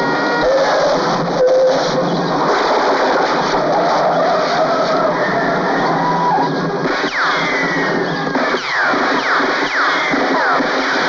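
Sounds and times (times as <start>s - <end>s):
tyres on a dirt road: 0.0s - 11.0s.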